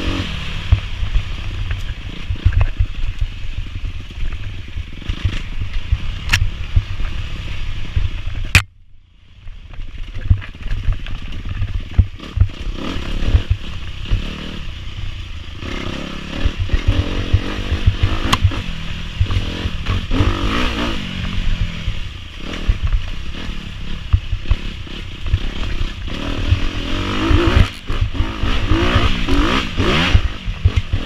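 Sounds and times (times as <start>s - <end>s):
wind on helmet camera: 0.0s - 8.6s, 9.4s - 15.7s
dirt bike engine running hard: 0.0s - 31.0s
sharp click: 5.1s - 6.5s, 8.5s - 8.8s, 18.2s - 18.6s.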